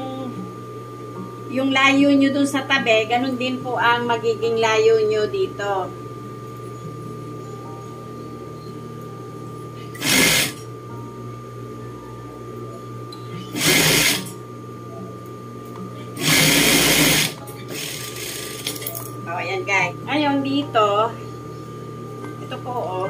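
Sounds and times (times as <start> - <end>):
steady low hum: 0.0 - 23.0
sewing machine stitching: 10.0 - 10.6, 13.6 - 14.3, 16.2 - 18.7.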